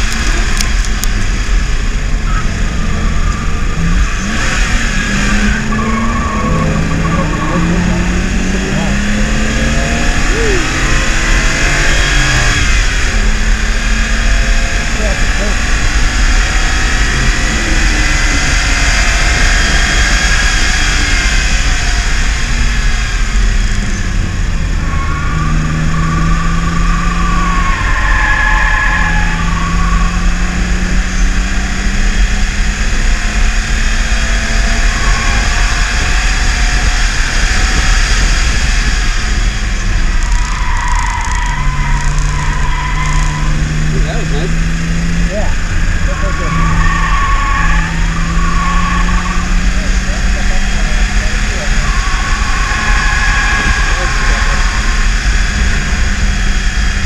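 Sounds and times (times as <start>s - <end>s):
car engine revving: 0.0s - 57.0s
road and wind noise: 0.0s - 57.0s.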